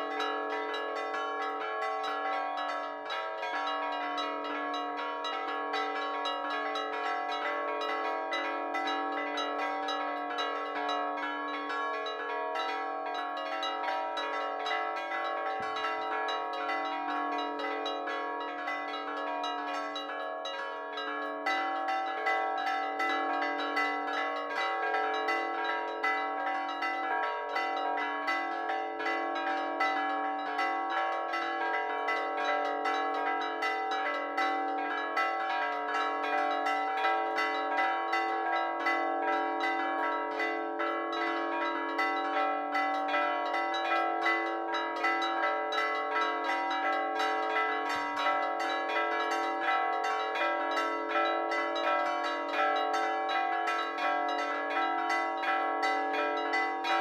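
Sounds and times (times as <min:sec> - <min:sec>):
church bells pealing: 0:00.0 - 0:57.0.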